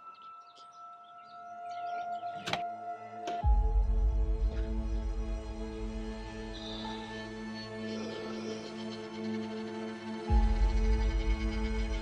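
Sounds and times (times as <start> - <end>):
held soundtrack music tones: 0.0 - 12.0
door latch click: 2.4 - 3.5.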